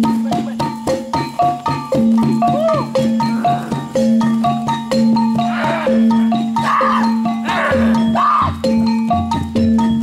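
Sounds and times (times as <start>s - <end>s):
metallophone notes: 0.0s - 10.0s
wailing cry: 2.4s - 4.0s, 5.5s - 8.6s.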